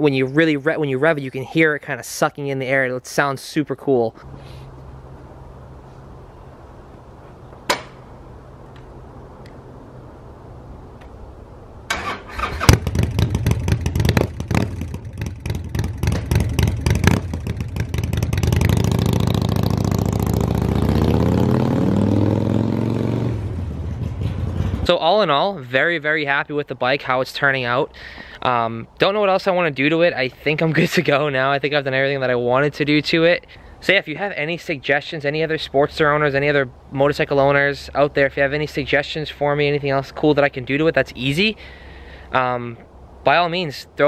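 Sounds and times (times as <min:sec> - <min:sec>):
motorcycle engine starting and running: 0:11.9 - 0:25.0.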